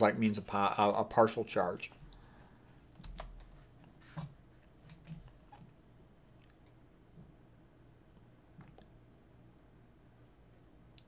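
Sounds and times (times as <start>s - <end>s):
keyboard and mouse clicks: 3.0s - 3.5s, 4.2s - 5.6s.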